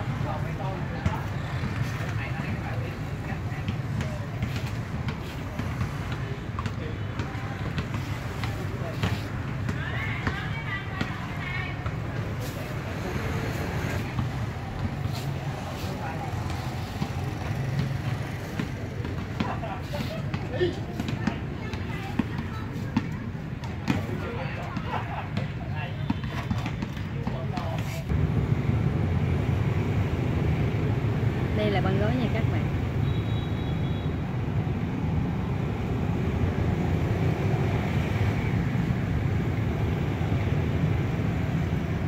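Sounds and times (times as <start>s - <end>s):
distant indistinct voices: 0.0s - 28.1s
low rumble of traffic: 0.0s - 42.0s.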